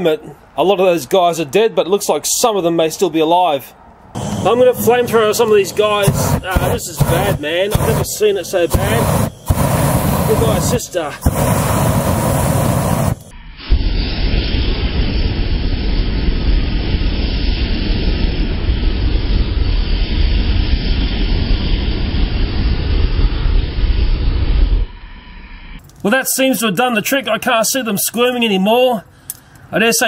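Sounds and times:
aerosol flame rushing: 4.2 - 24.7.

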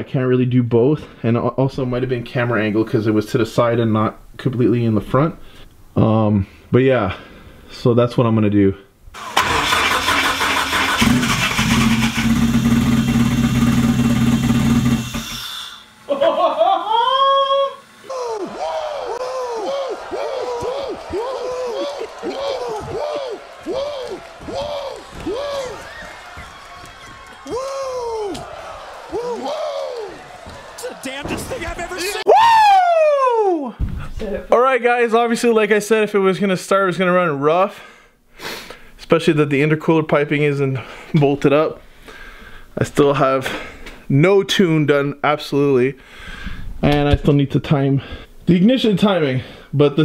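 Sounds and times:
car engine cranking and running rough: 9.2 - 15.2
people laughing: 16.1 - 32.3.

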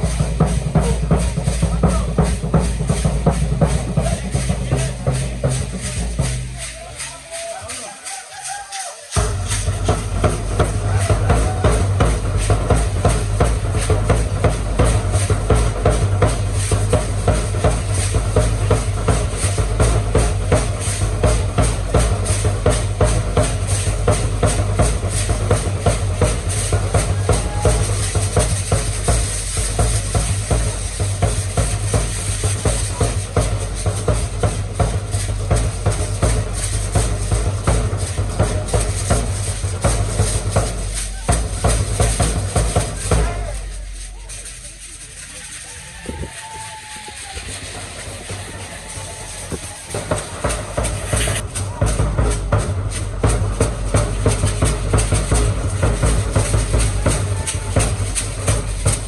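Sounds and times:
low drum beat: 0.0 - 59.0
gourd rattles shaken fast: 1.3 - 59.0.

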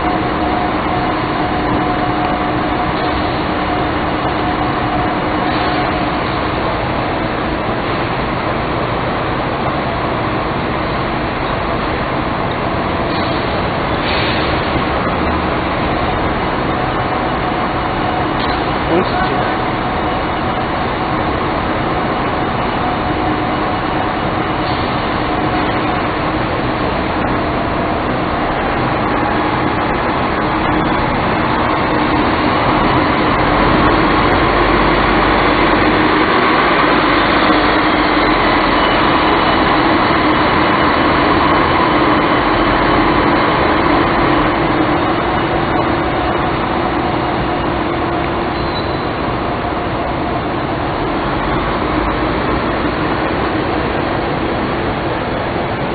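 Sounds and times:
bus diesel engine driving past: 0.0 - 55.9.

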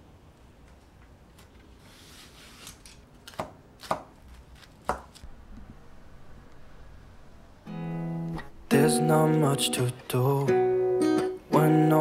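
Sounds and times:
knife chopping on wooden board: 3.3 - 4.2, 4.8 - 5.2.

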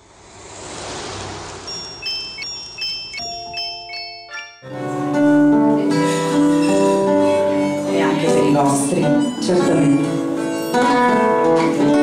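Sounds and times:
high clear chime notes: 1.7 - 5.3.

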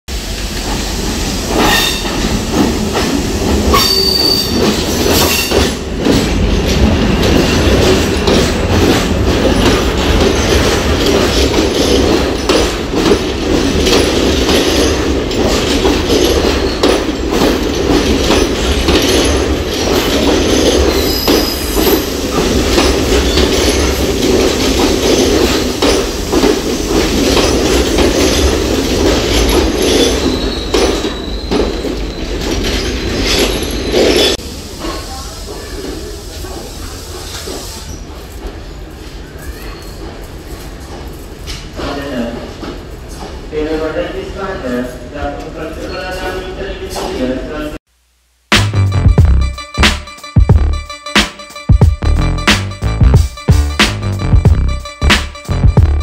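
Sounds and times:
train wheels rumbling on rail: 0.1 - 47.5
wheel squeals: 3.7 - 5.7, 16.1 - 26.2, 29.3 - 34.4, 38.7 - 40.9.

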